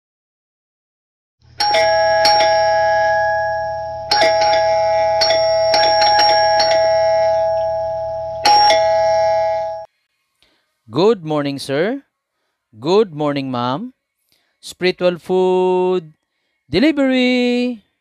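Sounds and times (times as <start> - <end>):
low steady hum: 1.4 - 10.0
doorbell chime: 1.6 - 9.9.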